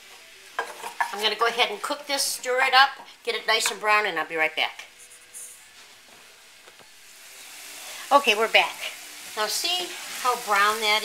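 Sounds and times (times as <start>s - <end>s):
sausage sizzling in frying pan: 0.0s - 11.0s.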